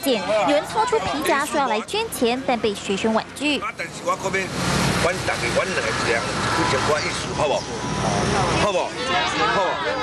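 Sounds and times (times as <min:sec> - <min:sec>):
vehicle passing: 0:03.7 - 0:09.6.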